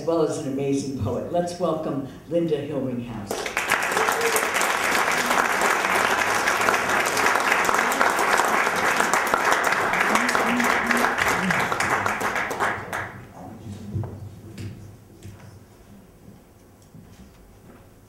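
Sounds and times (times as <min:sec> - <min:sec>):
audience applauding: 0:03.3 - 0:13.3.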